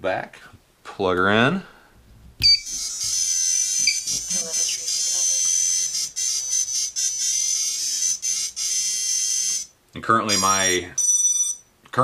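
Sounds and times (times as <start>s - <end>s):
high-pitched electronic tone: 2.4s - 9.7s, 10.3s - 11.6s.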